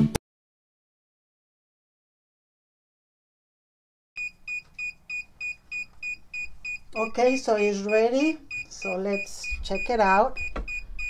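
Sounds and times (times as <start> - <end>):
short high alarm beeps: 4.2 - 11.0.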